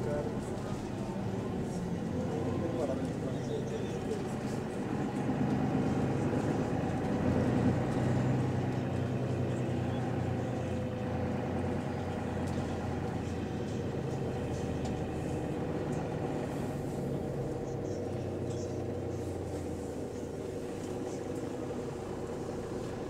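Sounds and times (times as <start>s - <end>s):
bus engine running: 0.0s - 23.0s.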